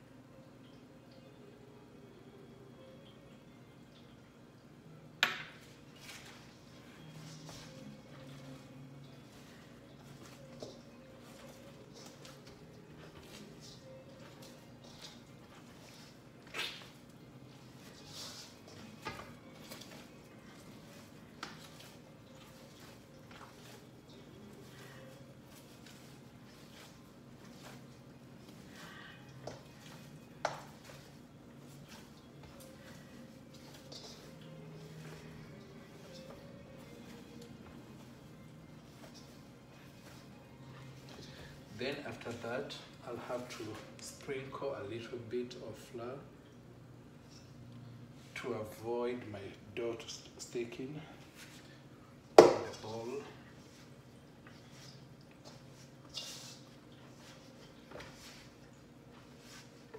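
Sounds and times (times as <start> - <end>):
low steady hum: 0.0 - 59.9
hands working dough: 5.3 - 44.6, 52.4 - 59.9.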